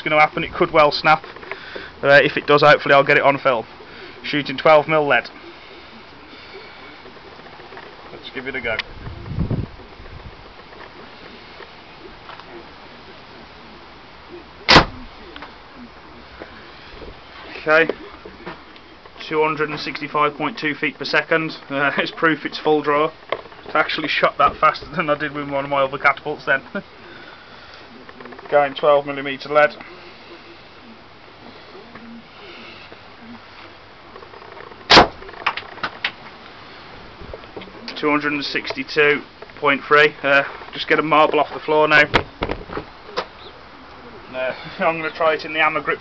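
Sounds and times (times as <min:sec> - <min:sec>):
slingshot shot crack: 0:14.7 - 0:15.0, 0:34.9 - 0:35.2
catapult shot crack: 0:14.7 - 0:15.1, 0:34.9 - 0:36.0.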